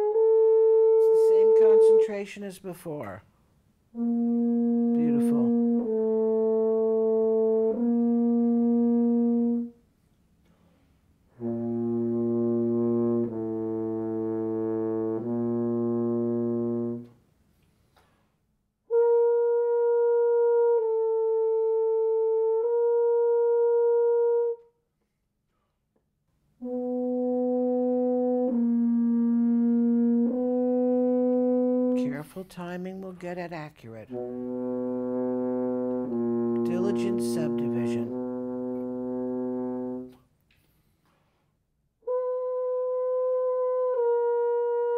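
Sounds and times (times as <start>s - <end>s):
french horn sustained notes: 0.0s - 3.1s, 3.9s - 9.8s, 11.3s - 17.2s, 18.9s - 24.6s, 26.6s - 32.5s, 34.0s - 40.2s, 42.0s - 44.9s.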